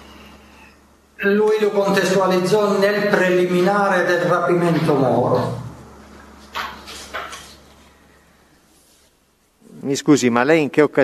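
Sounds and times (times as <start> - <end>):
man speaking: 1.2 - 5.8, 9.7 - 11.0.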